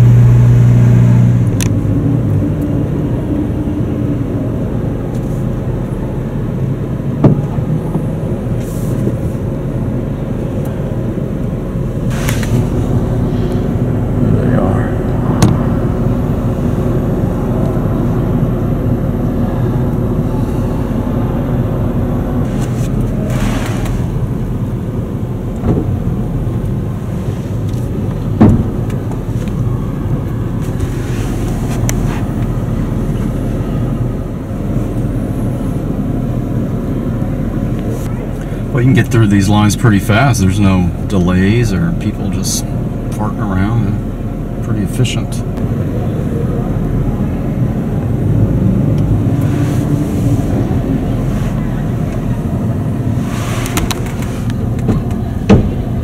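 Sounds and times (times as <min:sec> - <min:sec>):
car engine humming: 0:00.0 - 0:56.0
sharp knocks and thumps: 0:28.4 - 0:28.9, 0:53.7 - 0:55.9.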